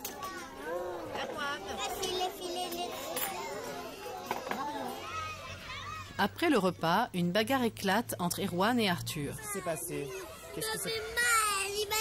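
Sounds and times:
young children chattering: 0.0s - 6.4s, 9.0s - 12.0s.

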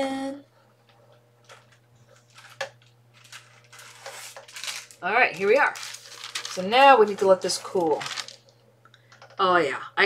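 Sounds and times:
laminator humming: 0.0s - 10.0s
paper rustling and clicking: 1.5s - 8.4s.

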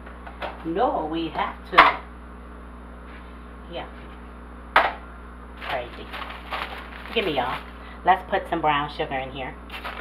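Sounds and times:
steady low hum: 0.0s - 10.0s
person speaking: 5.6s - 8.3s.

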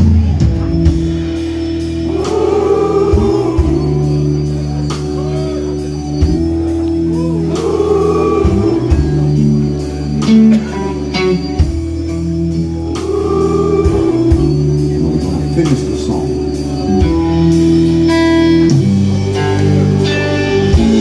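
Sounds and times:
bass guitar: 0.0s - 21.0s
drums: 0.0s - 21.0s
electric guitar: 0.0s - 21.0s
organ sustained chords: 0.0s - 21.0s
group of voices singing: 1.9s - 5.0s, 7.1s - 10.8s, 12.6s - 15.6s.

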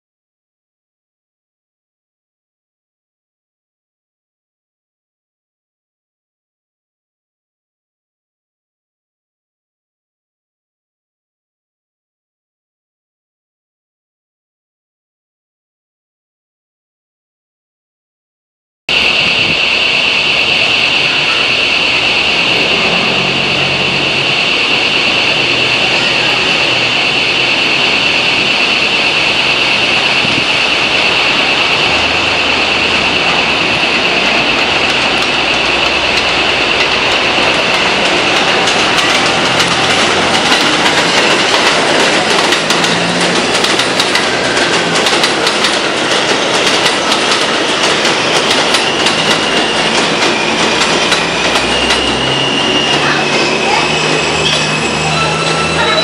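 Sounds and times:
high-pitched train squeal: 18.9s - 56.0s
wheels clacking over rail joints: 34.0s - 56.0s.

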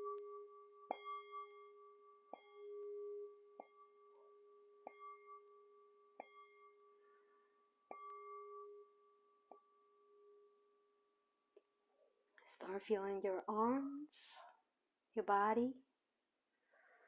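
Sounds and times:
singing bowl ringing: 0.0s - 11.5s.

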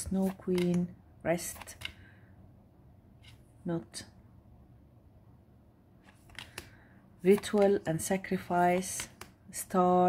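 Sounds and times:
cards sliding over each other: 1.4s - 2.1s, 6.0s - 7.7s.

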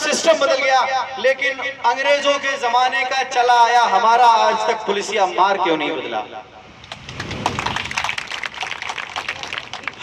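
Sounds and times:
crowd applauding: 6.9s - 10.0s.

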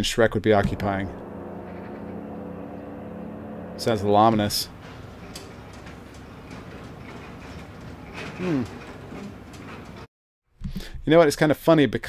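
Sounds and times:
distant motorboat engine drone: 0.6s - 10.0s.

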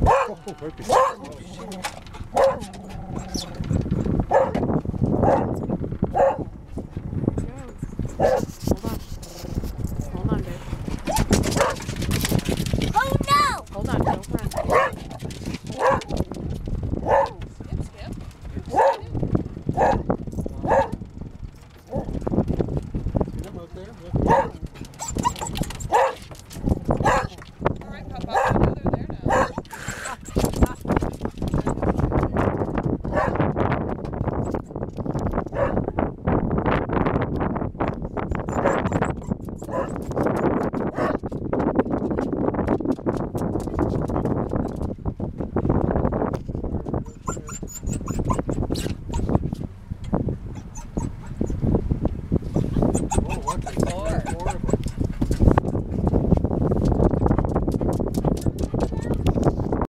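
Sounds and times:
dogs barking: 0.0s - 6.6s, 8.0s - 8.6s, 11.0s - 12.1s, 13.2s - 16.2s, 17.0s - 17.5s, 18.7s - 21.0s, 21.8s - 22.2s, 24.2s - 27.5s, 28.2s - 30.8s, 33.0s - 33.5s, 35.5s - 35.9s, 38.4s - 41.2s, 50.6s - 51.6s, 52.6s - 55.6s.

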